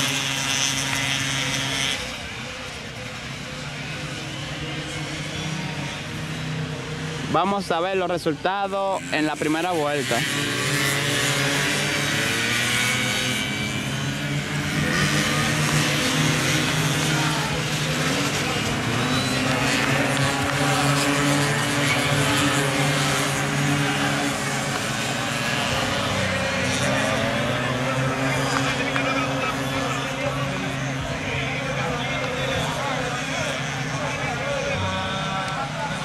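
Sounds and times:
racing scooter engines: 0.0s - 36.0s.

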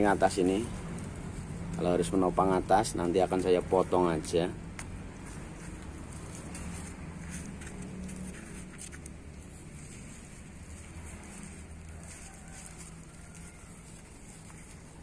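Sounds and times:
fingers rubbing soil: 0.0s - 15.0s.

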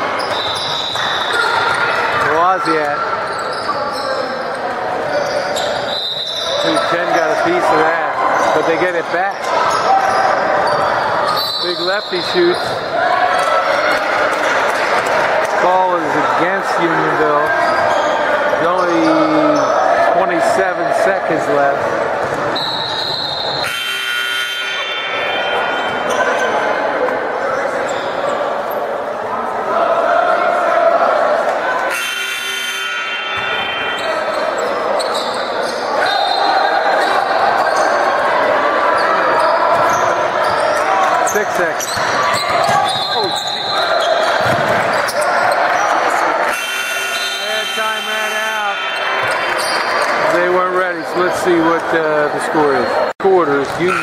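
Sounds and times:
voices around the court: 0.0s - 54.0s.

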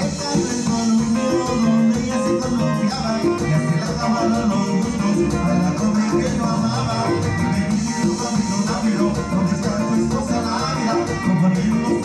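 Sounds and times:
guitar: 0.0s - 12.0s
live latin dance band: 0.0s - 12.0s.

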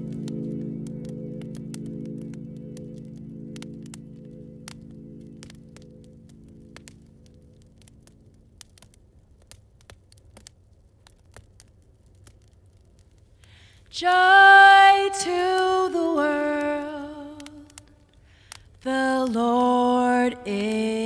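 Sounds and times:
song's sustained chord: 0.0s - 8.6s
wood fire crackling and popping: 0.0s - 21.0s.

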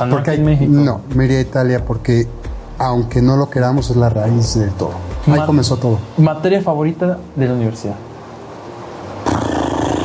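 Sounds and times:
loud rough roaring: 9.2s - 10.0s.

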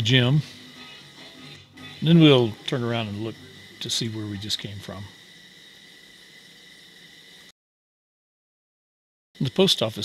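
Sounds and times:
thin high tone: 0.0s - 7.5s.

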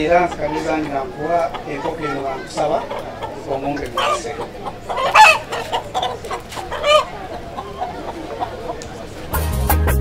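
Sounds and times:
soft clucking: 0.0s - 9.4s
rooster crowing: 5.0s - 7.2s.

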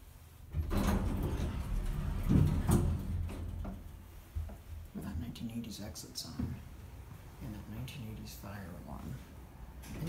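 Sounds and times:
elevator doors sliding open: 0.5s - 4.3s.

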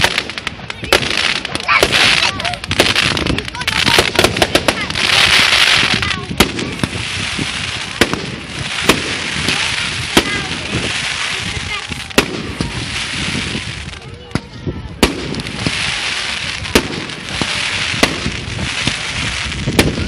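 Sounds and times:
fireworks bangs and crackles: 0.0s - 20.0s.

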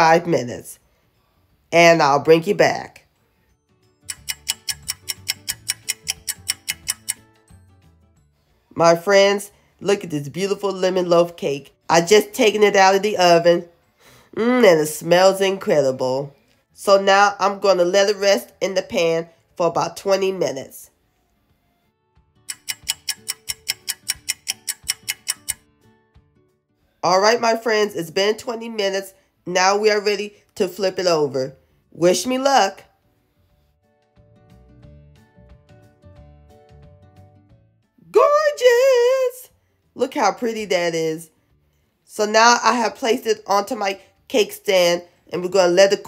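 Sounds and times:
low soft music: 0.0s - 46.0s
clock ticking: 4.0s - 7.3s, 22.5s - 25.6s.

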